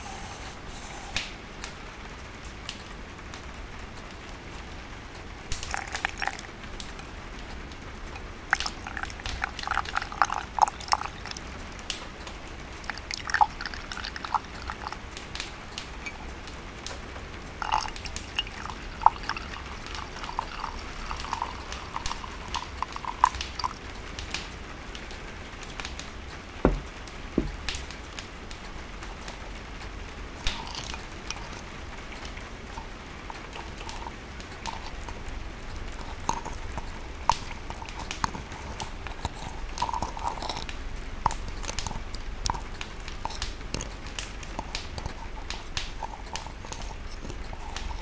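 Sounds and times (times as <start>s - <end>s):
rain: 0.0s - 48.0s
wind: 0.0s - 48.0s
stove fire crackling and popping: 1.0s - 48.0s.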